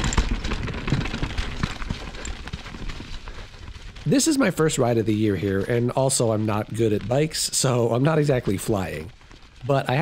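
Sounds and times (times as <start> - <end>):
bike clicking and knocking over rocks: 0.0 - 4.0.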